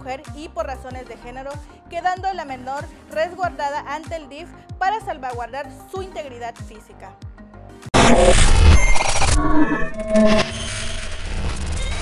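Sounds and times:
short pitched tone: 8.0 - 12.0.

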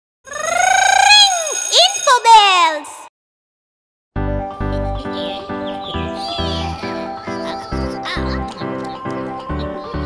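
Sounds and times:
warbling voice-like tone: 0.3 - 2.0.

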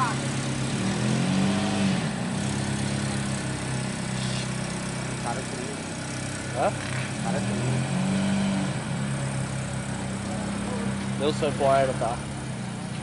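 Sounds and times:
pickup engine running at low revs: 0.0 - 13.0.

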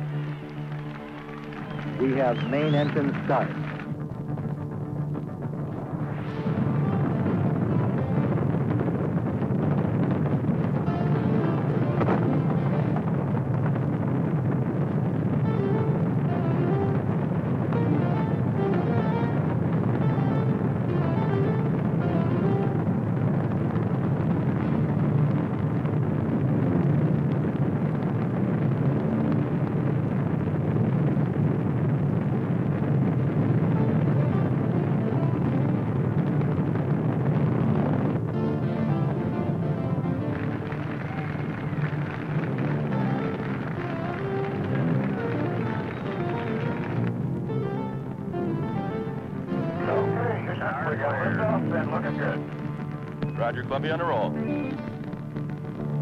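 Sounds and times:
music: 0.0 - 56.0
rocket engines rumbling: 0.0 - 56.0.

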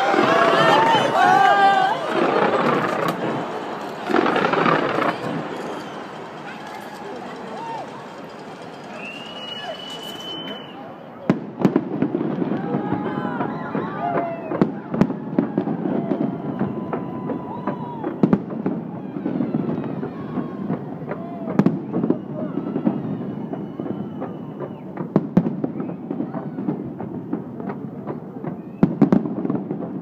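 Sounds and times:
fireworks bursting: 0.0 - 30.0
fireworks crackling: 0.0 - 30.0.

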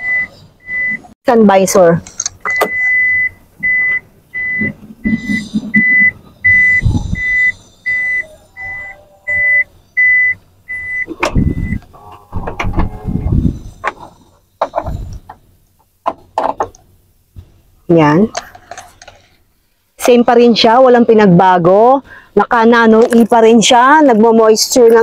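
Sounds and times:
high-pitched warning chime beeps: 2.5 - 11.8
knocks and rustling in cabin: 11.1 - 15.4.

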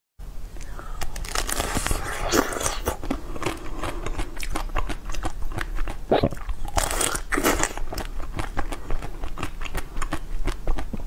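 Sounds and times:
crunching hard treat: 0.6 - 11.0.

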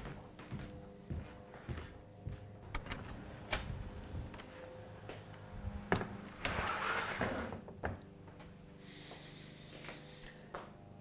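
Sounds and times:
soft footsteps on indoor floor: 0.0 - 6.2, 7.8 - 10.8.

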